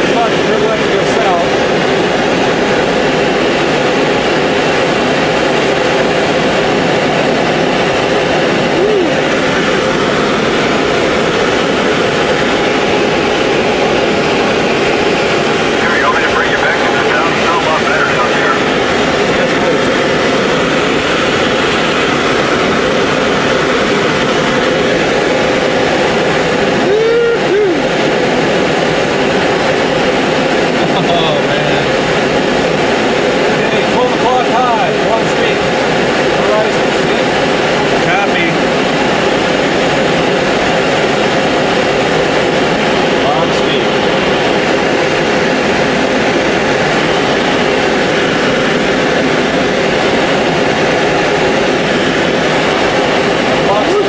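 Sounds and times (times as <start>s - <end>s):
air rushing around canopy: 0.0s - 54.0s
plane engine drone: 0.0s - 54.0s.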